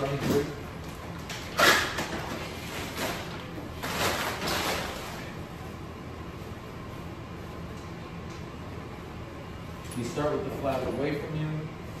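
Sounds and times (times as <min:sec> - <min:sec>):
ventilation hum: 0:00.0 - 0:12.0
packaging rustling and crinkling: 0:01.1 - 0:05.3.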